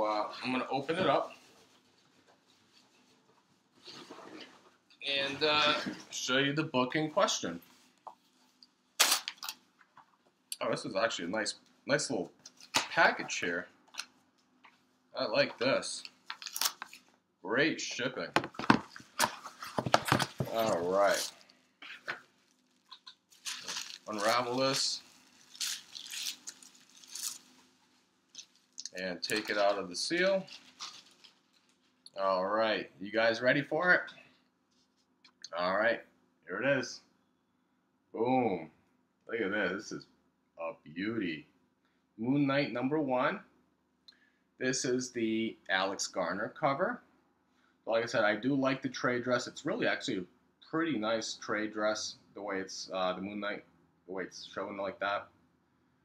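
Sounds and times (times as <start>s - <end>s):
bubble wrap crinkling: 16.0s - 17.1s, 18.8s - 32.2s
package handling rustle: 18.5s - 32.1s.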